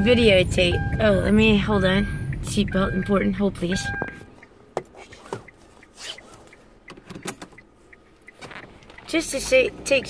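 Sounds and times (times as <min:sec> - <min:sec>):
low car rumble: 0:00.0 - 0:10.0.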